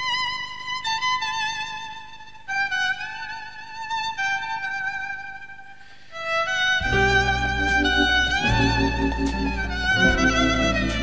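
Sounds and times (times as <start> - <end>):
solo violin melody: 0.0 - 11.0.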